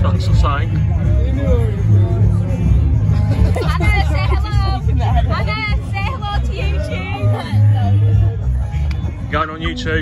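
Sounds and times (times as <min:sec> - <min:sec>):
crowd chatter: 0:00.0 - 0:10.0
music with heavy bass: 0:00.0 - 0:10.0.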